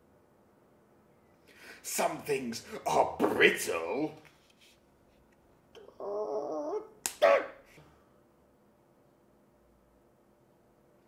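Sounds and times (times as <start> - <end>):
person squealing: 5.8 - 7.6
person yelping: 5.8 - 7.6.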